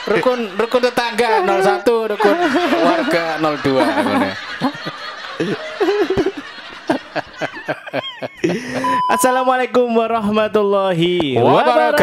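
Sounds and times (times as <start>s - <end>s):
men laughing: 0.0s - 9.1s
man's voice trailing off: 1.3s - 2.5s.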